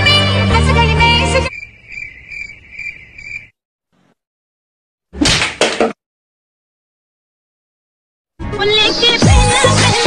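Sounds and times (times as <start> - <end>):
cricket chirping: 1.5 - 3.6.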